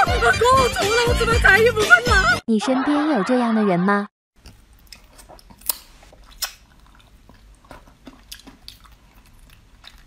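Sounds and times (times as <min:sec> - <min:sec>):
eating sounds: 0:04.4 - 0:10.0.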